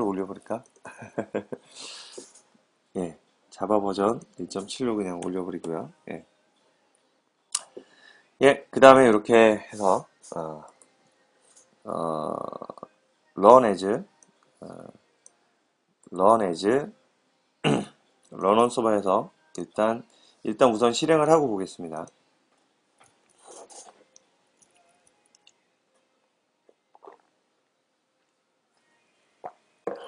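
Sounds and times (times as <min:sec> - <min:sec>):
person laughing: 0:00.9 - 0:01.8.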